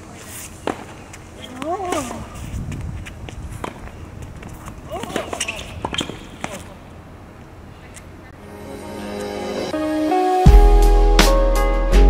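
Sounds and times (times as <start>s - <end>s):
racquets striking tennis ball: 0.2s - 7.6s
tennis ball bouncing: 0.6s - 7.0s.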